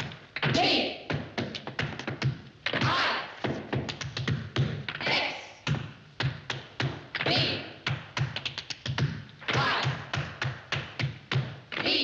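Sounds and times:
tap shoes on wooden floor: 0:00.0 - 0:05.0.

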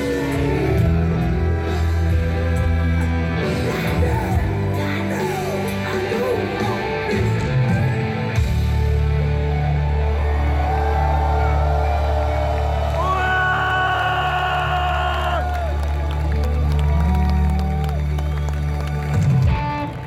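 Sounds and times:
heavy bass: 0:00.0 - 0:20.0
live rock band: 0:00.0 - 0:20.0
audience cheering and whooping: 0:09.2 - 0:20.0.

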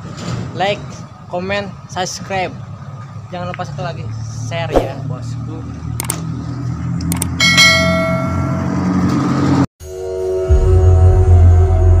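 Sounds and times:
ringing bell chime: 0:07.4 - 0:09.1.

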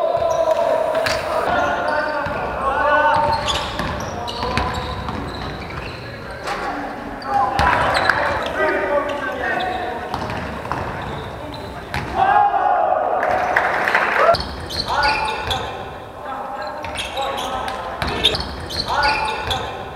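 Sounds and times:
players calling out: 0:00.0 - 0:19.9
basketball bouncing on court: 0:02.2 - 0:06.1, 0:07.2 - 0:08.5, 0:10.1 - 0:12.2, 0:16.8 - 0:19.9.

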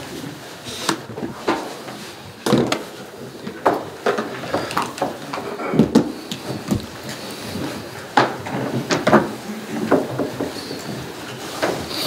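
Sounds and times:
chairs and equipment knocking: 0:02.5 - 0:12.0.

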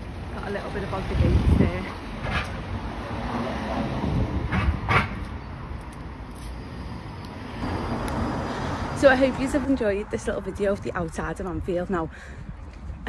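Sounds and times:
street rumble with hiss: 0:00.0 - 0:13.0.

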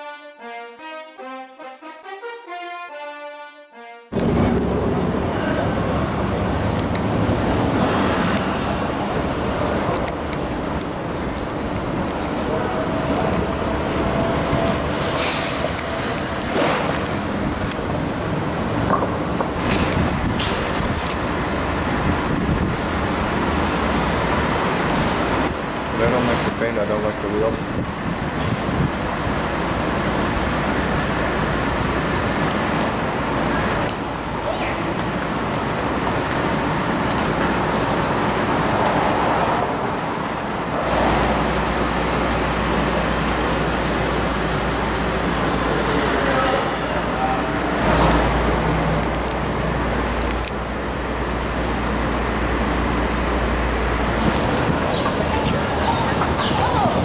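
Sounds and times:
brass intro music: 0:00.0 - 0:04.6
street traffic rumble: 0:04.1 - 0:57.0.

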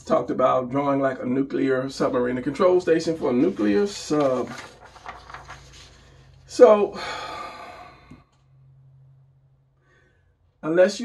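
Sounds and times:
man sighing: 0:06.9 - 0:08.2.

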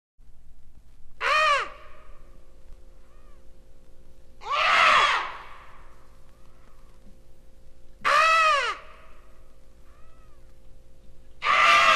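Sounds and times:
record hum and surface crackle: 0:00.2 - 0:11.9
crow-like cawing calls: 0:01.2 - 0:03.5, 0:04.4 - 0:07.1, 0:08.0 - 0:10.6, 0:11.4 - 0:11.9.

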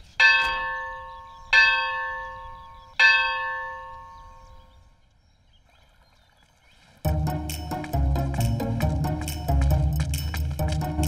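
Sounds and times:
temple bell ringing: 0:00.2 - 0:04.6.

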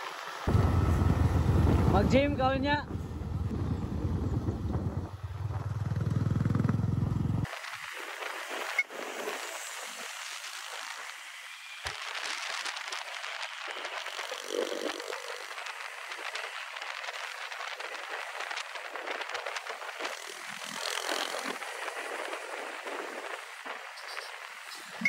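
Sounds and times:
wind and road noise rushing: 0:00.0 - 0:25.0.

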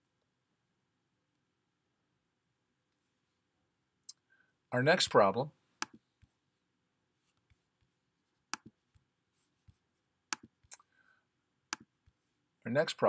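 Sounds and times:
computer mouse clicks: 0:05.8 - 0:06.0, 0:08.5 - 0:08.8, 0:10.3 - 0:10.9.

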